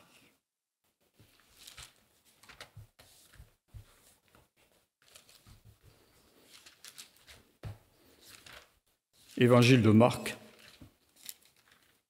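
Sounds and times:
pages rustling: 1.1s - 9.8s, 10.5s - 12.0s.

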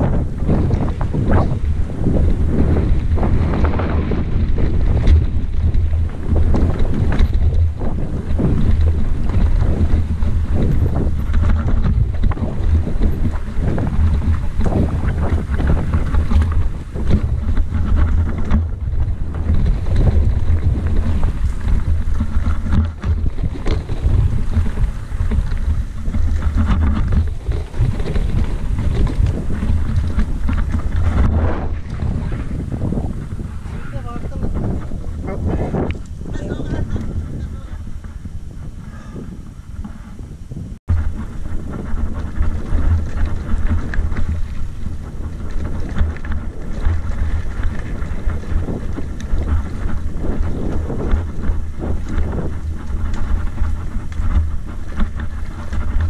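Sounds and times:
bike rattling over rocky trail: 0.0s - 56.0s
wind buffeting microphone: 0.0s - 56.0s.

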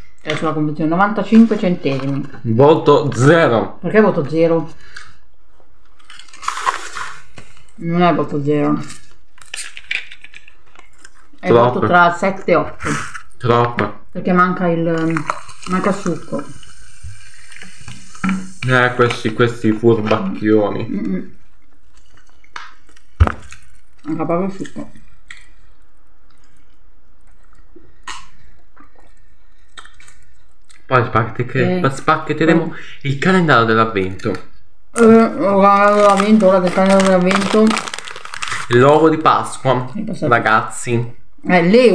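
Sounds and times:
chewing crunchy snack: 5.9s - 7.7s, 21.6s - 30.9s, 35.8s - 38.9s
person sipping water: 25.4s - 30.8s.

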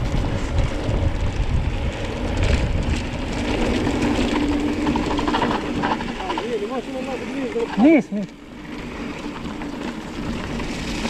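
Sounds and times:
wind on microphone: 0.0s - 7.3s
bike rattle: 0.0s - 11.0s
bike tyres on dirt trail: 0.0s - 11.0s.

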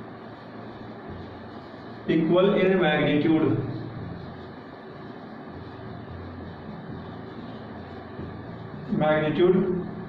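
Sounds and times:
faint background hiss: 0.0s - 10.0s
steady low hum: 0.0s - 10.0s.

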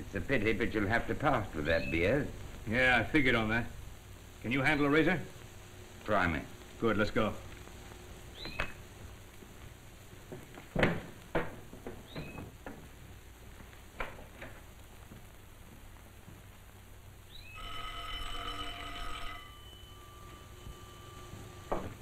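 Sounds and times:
electric doorbell ringing: 17.5s - 22.0s.

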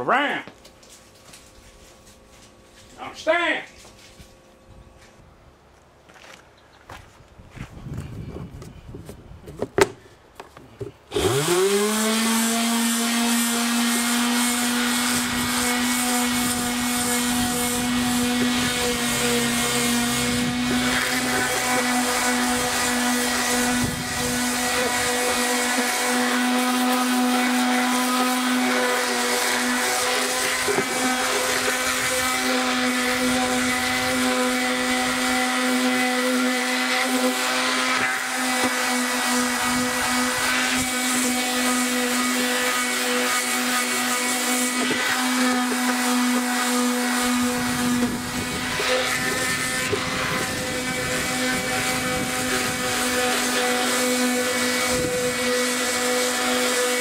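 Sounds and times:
electric palm sander running: 10.7s - 57.0s.

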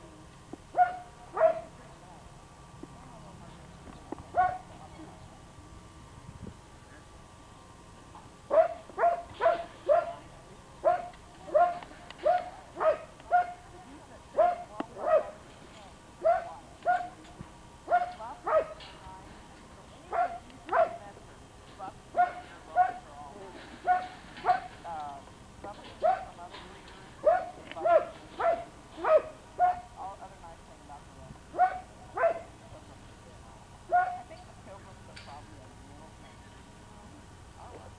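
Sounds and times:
dog barking: 0.8s - 1.7s, 4.3s - 4.6s, 8.5s - 10.2s, 10.8s - 13.6s, 14.4s - 15.4s, 16.2s - 17.2s, 17.9s - 18.8s, 20.1s - 21.0s, 22.1s - 23.0s, 23.8s - 24.7s, 26.0s - 26.4s, 27.2s - 29.9s, 31.5s - 32.5s, 33.9s - 34.3s.

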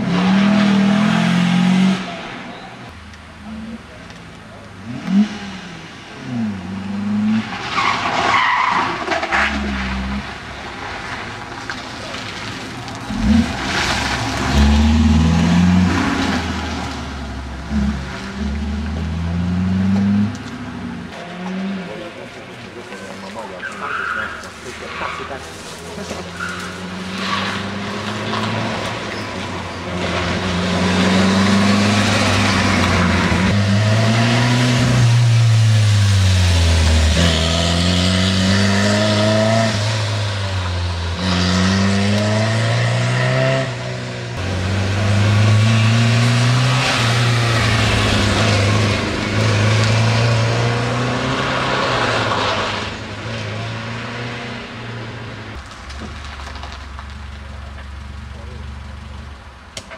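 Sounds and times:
car engine revving hard: 0.0s - 2.4s, 26.8s - 55.1s.

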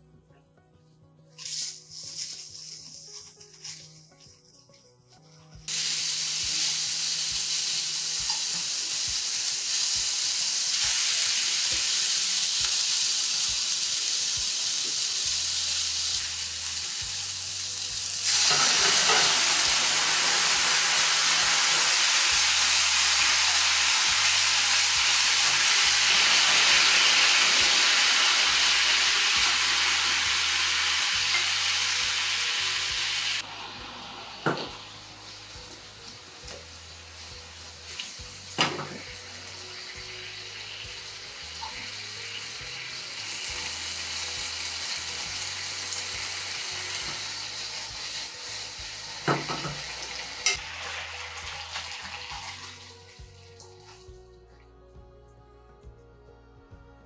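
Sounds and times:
eggplant sizzling in hot oil: 1.4s - 3.9s, 5.7s - 53.3s.

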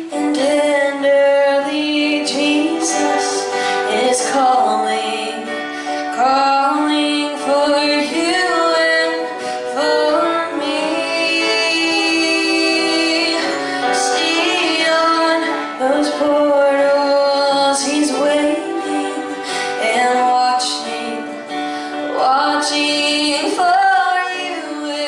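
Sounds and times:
acoustic guitar: 0.0s - 25.0s
fiddles playing slow melody: 1.6s - 6.1s, 8.7s - 16.3s, 17.7s - 22.2s.

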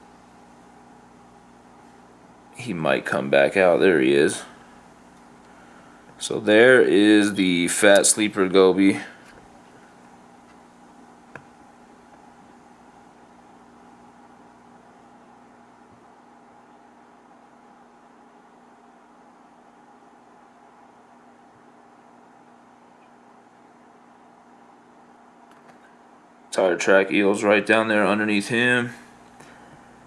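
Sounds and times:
faint steady hum with hiss: 0.0s - 30.0s.

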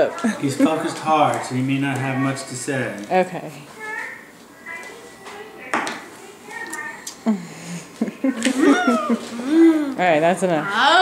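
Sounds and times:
laughter: 0.4s - 1.0s, 8.0s - 9.3s.

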